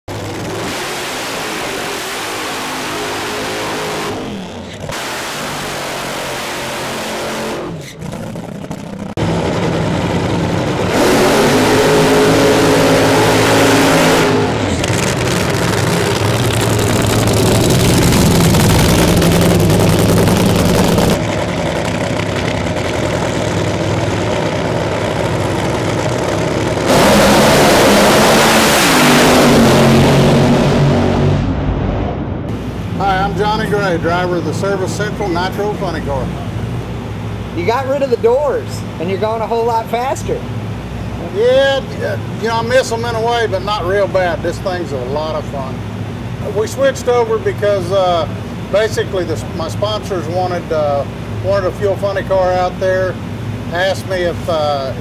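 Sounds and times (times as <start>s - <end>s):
dragster engine revving: 0.0s - 55.0s.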